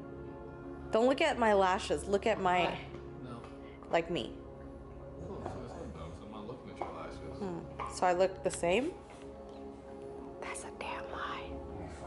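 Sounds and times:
quiet background music: 0:00.0 - 0:12.0
person whispering: 0:10.4 - 0:12.0.

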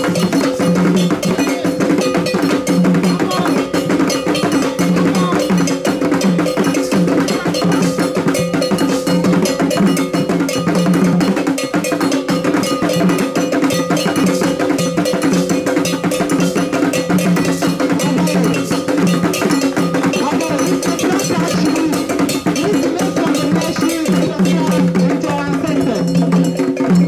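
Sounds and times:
hand drums playing fast rhythm: 0:00.0 - 0:27.0
metal bell ringing: 0:00.0 - 0:27.0.

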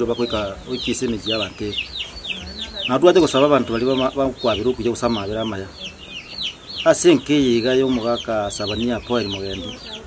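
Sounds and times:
birds chirping fast: 0:00.0 - 0:10.0.

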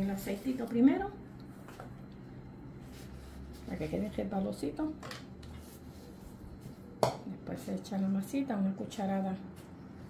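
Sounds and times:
low steady hum: 0:00.0 - 0:10.0
faint handling sounds: 0:01.4 - 0:04.2.

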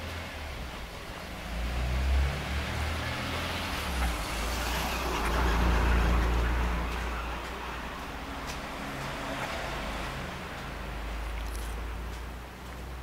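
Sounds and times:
car driving past: 0:01.2 - 0:12.2.

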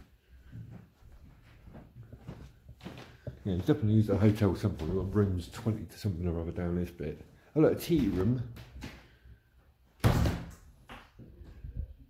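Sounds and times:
wooden door banging open: 0:10.0 - 0:10.6.

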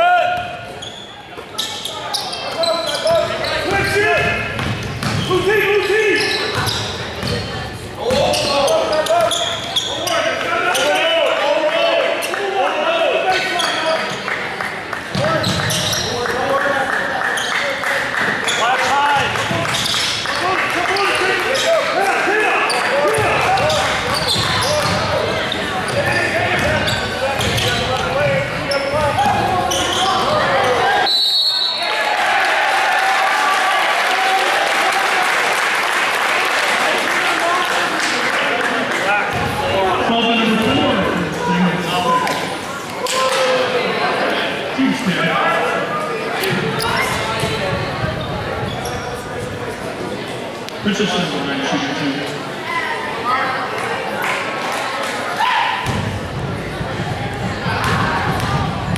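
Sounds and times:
crowd and players' voices echoing: 0:00.0 - 0:58.9
basketball bouncing on hardwood: 0:57.8 - 0:58.9.

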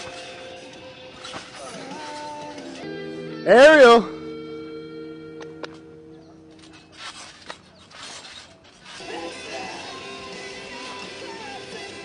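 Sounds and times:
trampoline springs creaking: 0:05.4 - 0:11.2.

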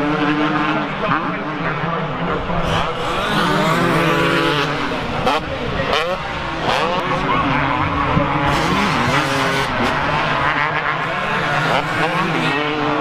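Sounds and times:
motocross bike engines revving: 0:00.0 - 0:13.0.

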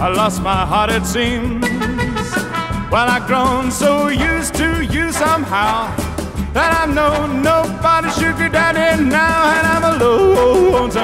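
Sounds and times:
country band backing: 0:00.0 - 0:11.0
man yodelling: 0:06.6 - 0:11.0.

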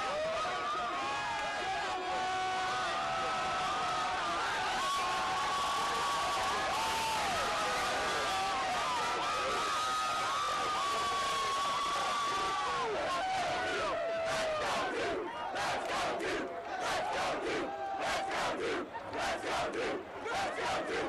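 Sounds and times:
crowd screaming and cheering: 0:00.0 - 0:15.6, 0:16.4 - 0:21.0
crowd chanting: 0:12.7 - 0:21.0.

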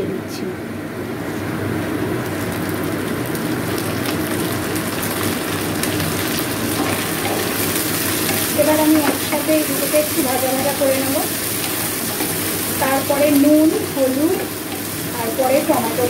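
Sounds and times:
vegetables sizzling in hot oil: 0:02.0 - 0:16.0.

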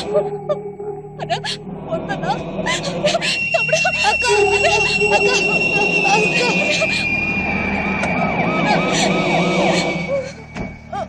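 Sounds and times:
rising-and-falling tones: 0:00.0 - 0:11.0
sustained high-pitched tone: 0:00.0 - 0:11.0.

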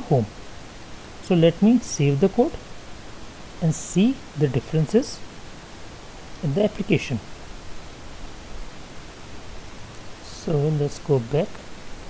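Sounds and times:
room and microphone hiss: 0:00.0 - 0:12.0
person speaking: 0:01.2 - 0:02.6, 0:03.6 - 0:05.2, 0:06.4 - 0:07.3, 0:10.2 - 0:11.6.

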